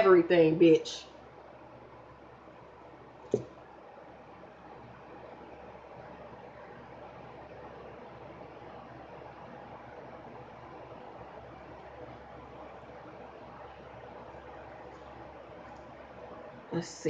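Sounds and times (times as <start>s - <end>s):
faint room noise hiss: 0.0s - 17.0s.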